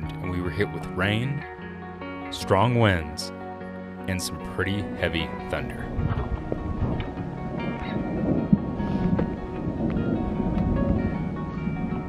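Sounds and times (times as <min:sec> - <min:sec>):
background music with held tones: 0:00.0 - 0:12.0
rumble of thunder: 0:05.9 - 0:12.0.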